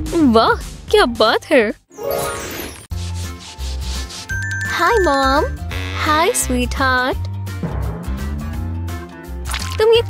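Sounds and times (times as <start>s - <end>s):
broom sweeping wooden floor: 2.9s - 4.7s
background music with bass: 5.5s - 10.0s.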